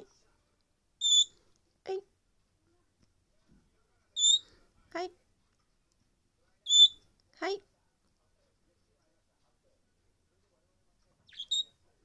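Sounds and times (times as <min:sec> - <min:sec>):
budgerigar chirp: 0:01.0 - 0:01.3, 0:04.2 - 0:04.4, 0:06.7 - 0:07.0, 0:11.3 - 0:11.8.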